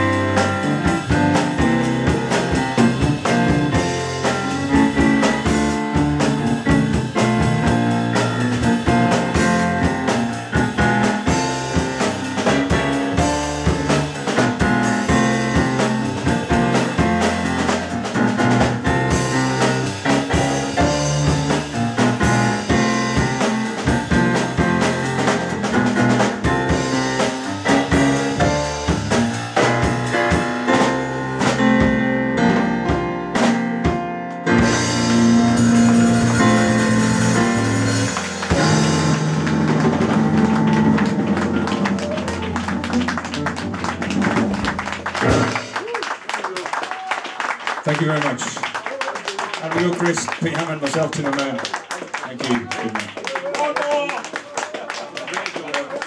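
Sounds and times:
upright double bass: 0.0 - 45.8
drum kit: 0.0 - 48.7
stage piano: 0.0 - 56.0.

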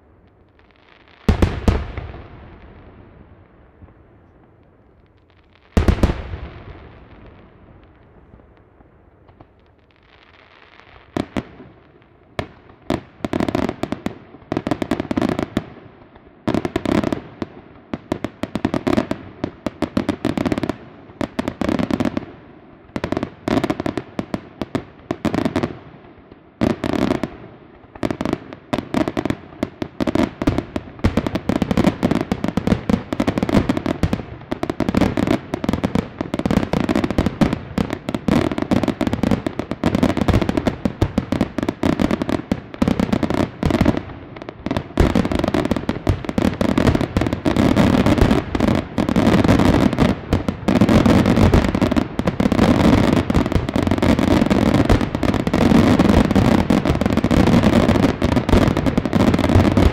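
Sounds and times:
fireworks bursting and crackling: 0.0 - 59.9.

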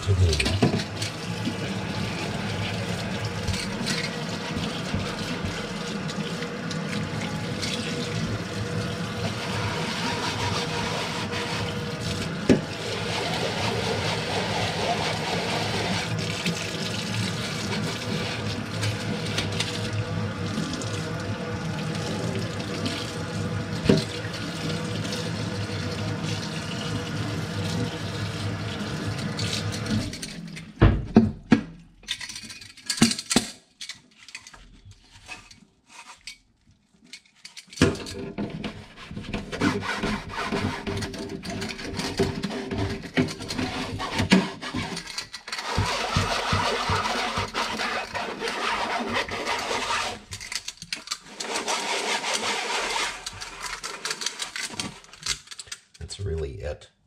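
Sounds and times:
tap water running into sink: 0.0 - 30.4
scrubbing metal container: 9.2 - 19.9, 38.7 - 50.5, 51.3 - 54.6.

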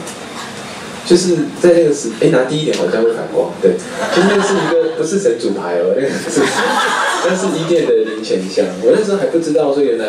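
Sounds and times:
man talking into a microphone: 1.1 - 10.0
chuckling: 3.9 - 5.0, 6.2 - 8.5.

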